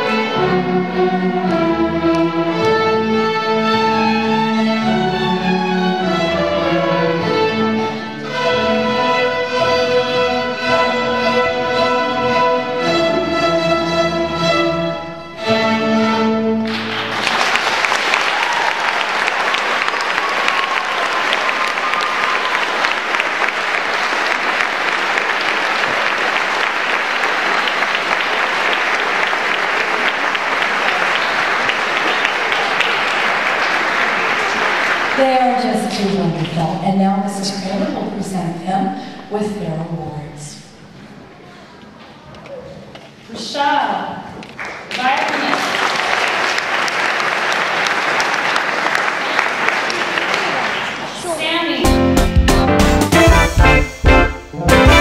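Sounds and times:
string orchestra playing: 0.0 - 17.4, 51.8 - 55.0
audience applauding: 16.6 - 36.5, 44.4 - 51.5.

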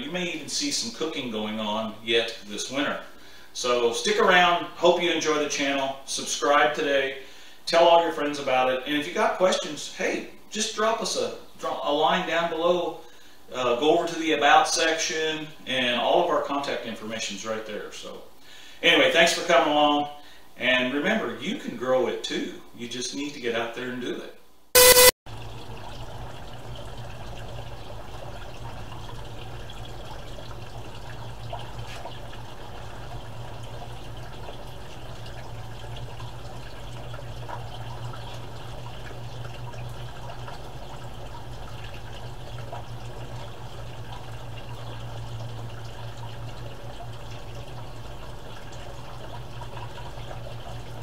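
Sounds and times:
water pouring into a metal tub: 25.3 - 51.0.

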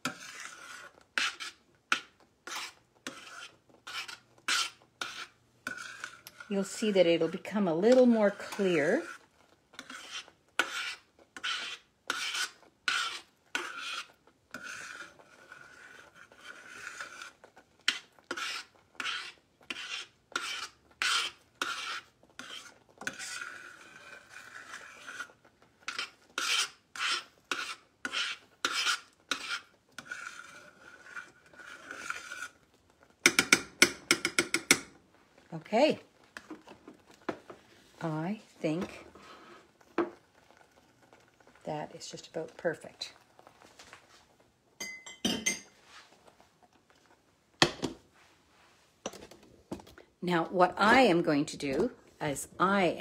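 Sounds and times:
metal spoon scraping saucepan: 0.0 - 35.0, 38.0 - 44.1, 44.8 - 46.8.

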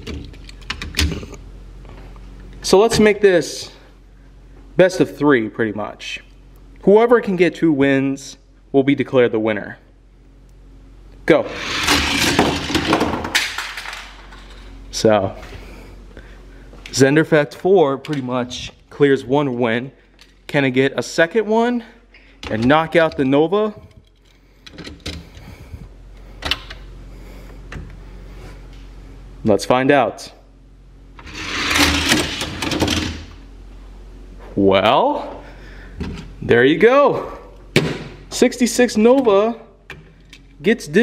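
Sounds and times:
toy cars rolling on plastic track: 11.5 - 14.0, 31.2 - 33.2.

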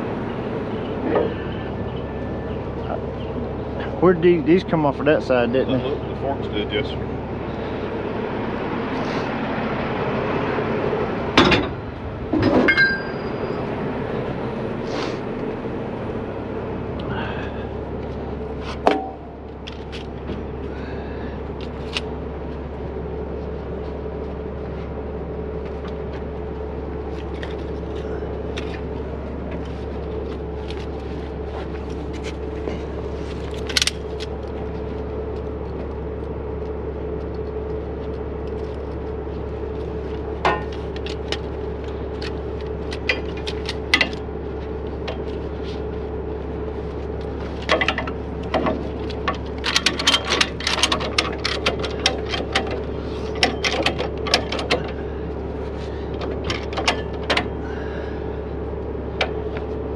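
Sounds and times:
diesel truck engine idling: 0.0 - 59.9
metal hooks clanking and rattling: 12.4 - 13.4, 47.6 - 55.0.

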